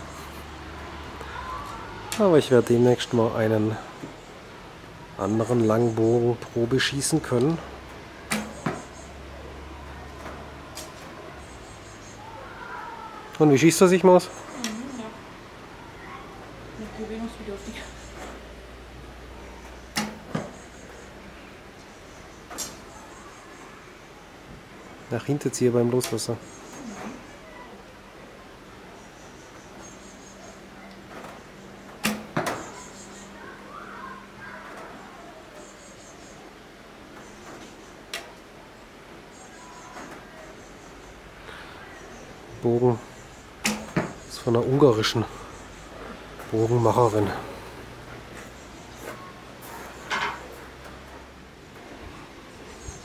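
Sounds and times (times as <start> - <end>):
arrow striking target: 8.3 - 8.8, 19.9 - 20.5, 32.0 - 32.6, 43.6 - 44.2.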